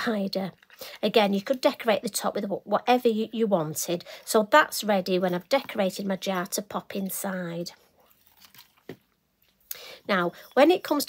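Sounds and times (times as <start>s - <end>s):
rustling and crackling: 7.8s - 9.7s.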